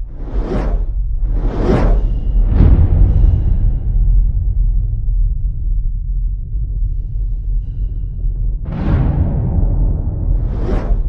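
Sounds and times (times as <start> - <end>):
whoosh sound effects: 0.0 - 2.6
deep bass music: 0.0 - 11.0.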